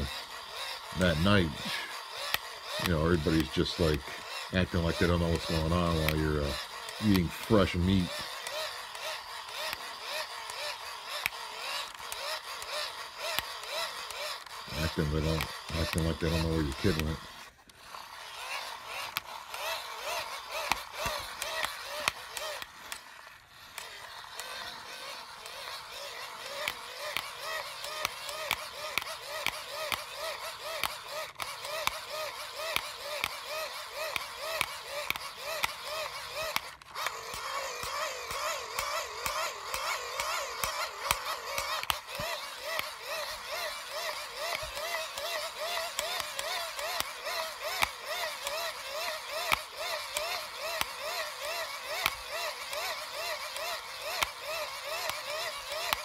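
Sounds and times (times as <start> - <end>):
gear clicking: 0.0 - 56.0
hand-crank dynamo whine: 0.0 - 56.0.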